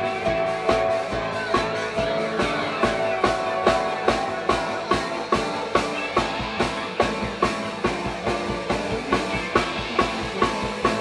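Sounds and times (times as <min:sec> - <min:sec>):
drum kit beat: 0:00.0 - 0:11.0
live band playing: 0:00.0 - 0:11.0.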